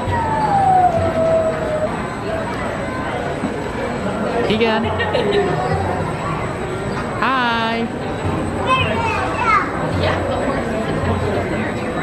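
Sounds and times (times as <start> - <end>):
children calling out: 0.0 - 2.2
crowd din: 0.0 - 12.0.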